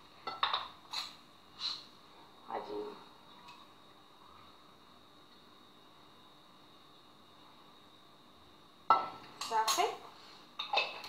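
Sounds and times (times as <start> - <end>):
faint high hum: 0.0 - 11.0.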